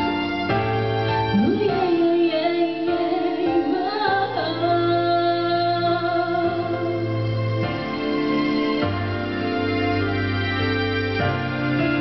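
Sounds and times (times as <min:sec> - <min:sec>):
woman singing into a microphone: 0:01.3 - 0:07.1.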